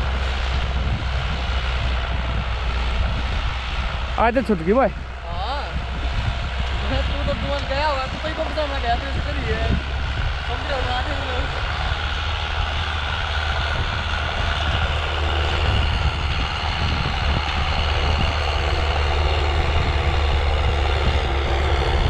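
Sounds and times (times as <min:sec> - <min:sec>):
tractor diesel engine running: 0:00.0 - 0:22.0.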